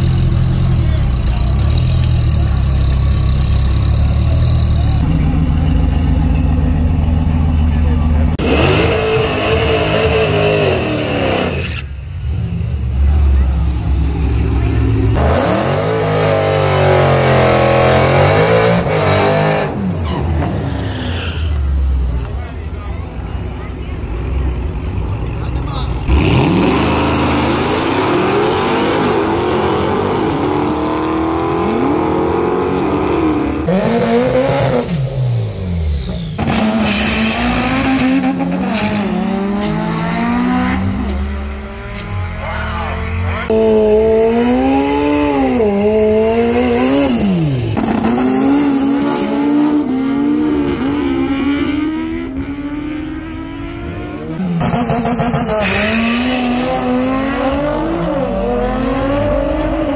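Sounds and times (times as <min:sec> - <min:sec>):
drag car engines revving: 0:00.0 - 0:59.9.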